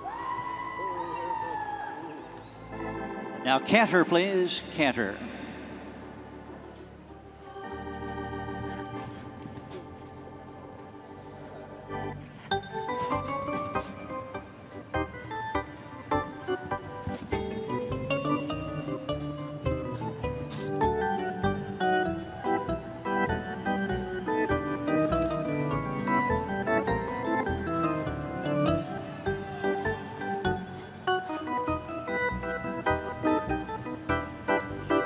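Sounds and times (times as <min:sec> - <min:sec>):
music with held notes: 0:05.8 - 0:35.0.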